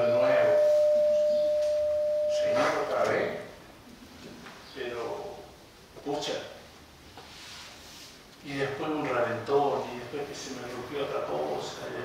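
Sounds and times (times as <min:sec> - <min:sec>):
man speaking: 0:00.0 - 0:00.7, 0:02.3 - 0:03.5, 0:08.5 - 0:12.0
microphone feedback tone: 0:00.0 - 0:03.0.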